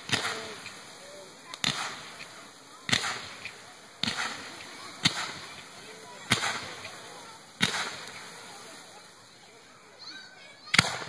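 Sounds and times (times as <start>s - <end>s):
fireworks bangs: 0.0s - 9.5s, 10.6s - 11.0s.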